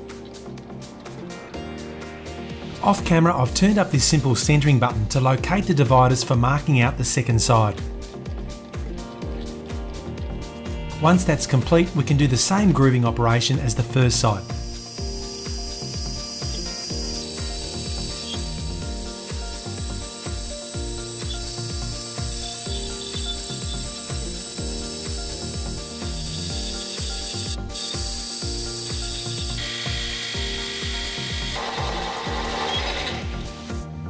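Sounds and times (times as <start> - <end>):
hiss of lathe cutting: 14.1 - 33.8
metal lathe whirring: 14.4 - 33.7.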